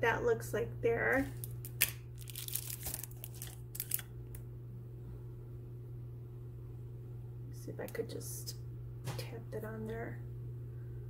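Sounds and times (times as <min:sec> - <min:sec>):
packaging crinkling: 0:01.2 - 0:04.4.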